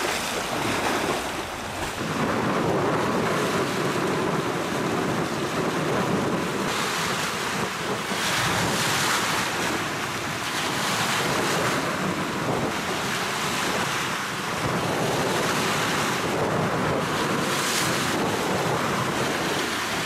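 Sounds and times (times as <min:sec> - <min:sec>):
waves sloshing against shoreline: 0:00.0 - 0:20.0
wind rumbling on microphone: 0:00.0 - 0:20.0.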